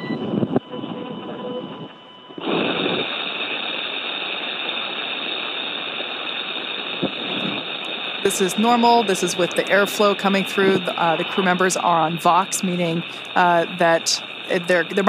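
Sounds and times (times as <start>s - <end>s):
rushing hiss of oxygen flow: 2.4s - 15.0s.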